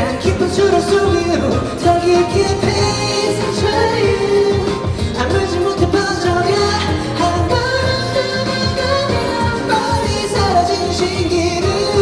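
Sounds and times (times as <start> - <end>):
man singing into microphone: 0.0 - 12.0
pop backing track: 0.0 - 12.0.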